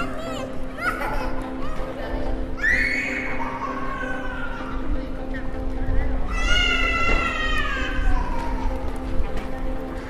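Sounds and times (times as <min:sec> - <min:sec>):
street noise: 0:00.0 - 0:10.0
child wailing: 0:06.3 - 0:08.8.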